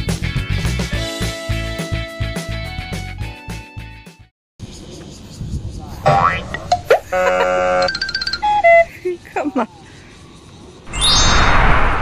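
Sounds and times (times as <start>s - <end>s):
sliding pitch sweeps: 10.9s - 12.0s.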